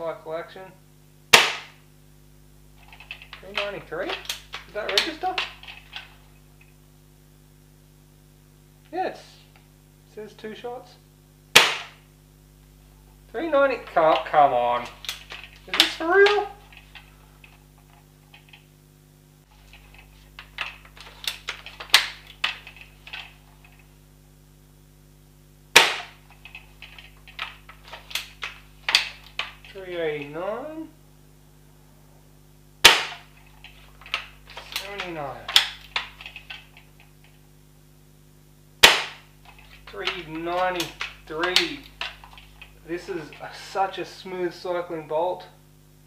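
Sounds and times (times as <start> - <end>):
low electrical hum: 0.0 - 46.0
sharp toy gun shot: 1.3 - 1.8, 11.5 - 12.0, 25.7 - 26.2, 32.8 - 33.3, 38.8 - 39.3.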